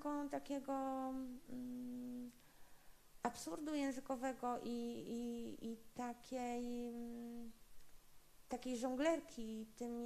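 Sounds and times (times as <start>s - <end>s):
woman's voice: 0.0s - 2.4s, 3.2s - 7.6s, 8.5s - 10.0s
woman humming hesitantly: 1.0s - 2.4s.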